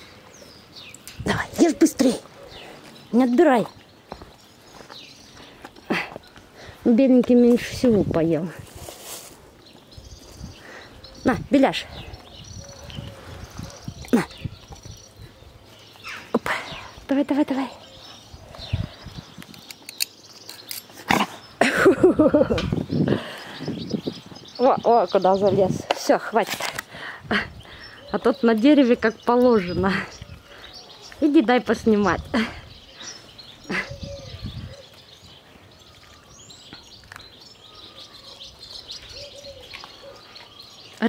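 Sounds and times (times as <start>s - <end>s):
small birds chirping: 0.0s - 41.0s
dove-like cooing: 33.6s - 35.2s, 39.0s - 40.4s.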